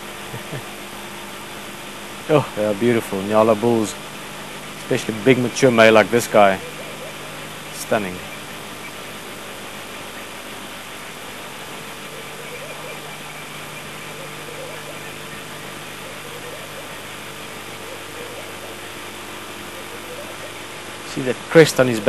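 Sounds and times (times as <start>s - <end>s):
background hiss: 0.0s - 22.0s
vehicle engine idling: 0.0s - 22.0s.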